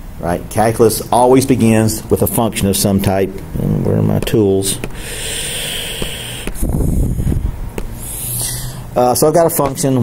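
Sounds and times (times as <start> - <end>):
steady hiss: 0.8 - 9.3.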